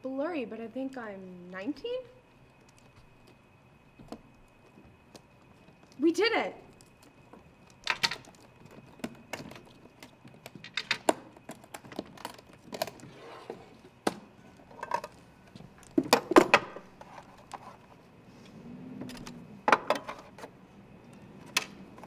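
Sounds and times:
clicks and knocks of handled objects: 6.7 - 17.8.

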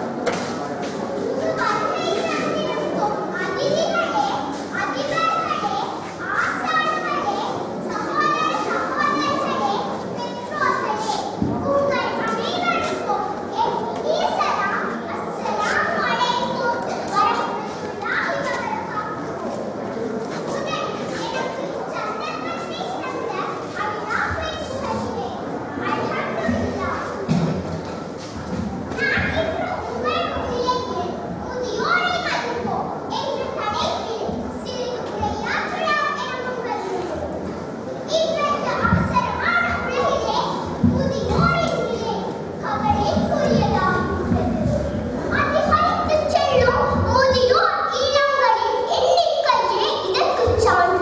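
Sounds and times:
children's voices: 0.0 - 51.0
girl reciting in echoing hall: 0.0 - 51.0.

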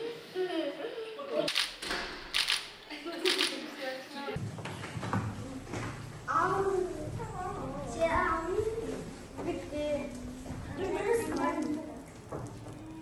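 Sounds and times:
children chattering: 5.4 - 13.0.

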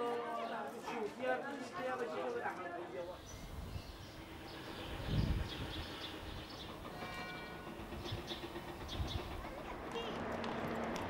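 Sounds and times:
small birds chirping: 3.0 - 10.1.

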